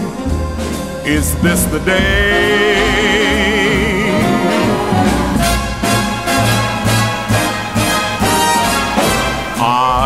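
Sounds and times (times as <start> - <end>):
jazz band playing: 0.0 - 10.0
low bass pulse: 1.1 - 7.4.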